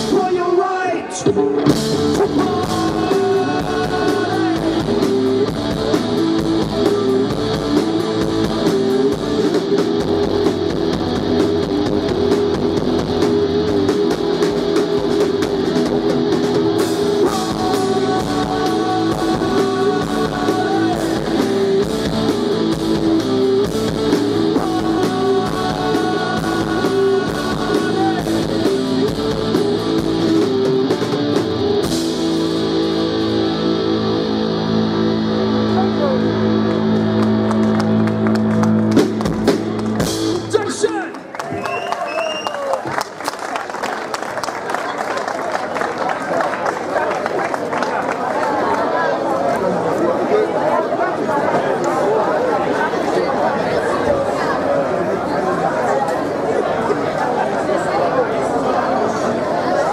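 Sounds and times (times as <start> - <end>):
live rock band playing: 0.0 - 41.1
crowd chatter: 0.0 - 59.9.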